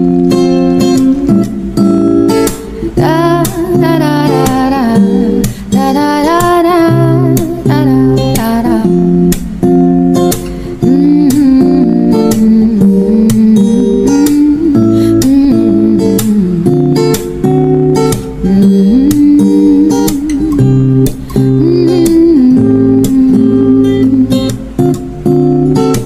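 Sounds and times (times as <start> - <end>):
acoustic guitar music: 0.0 - 26.0.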